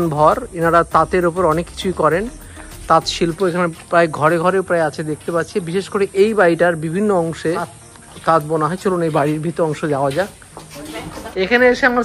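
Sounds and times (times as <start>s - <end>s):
man talking: 0.0s - 10.4s.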